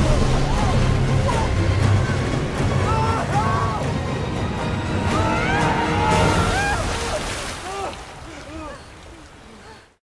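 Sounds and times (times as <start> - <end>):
dramatic music: 0.0 - 7.6
rushing water: 0.0 - 10.0.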